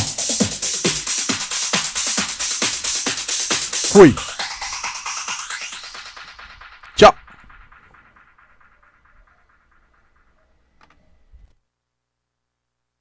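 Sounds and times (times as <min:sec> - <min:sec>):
electronic dance music: 0:00.0 - 0:10.4
short voice-like burst: 0:03.9 - 0:04.3.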